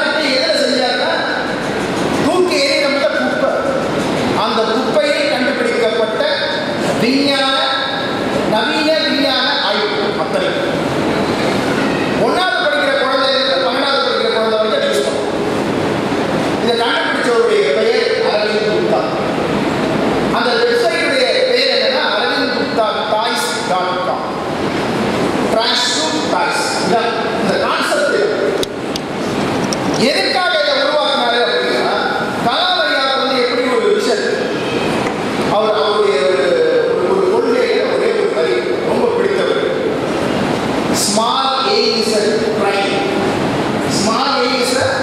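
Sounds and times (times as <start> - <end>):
man speaking over public address: 0.0 - 11.1, 12.2 - 15.6, 16.4 - 19.4, 20.2 - 24.5, 25.4 - 28.8, 29.8 - 45.0
noisy rush: 0.0 - 45.0.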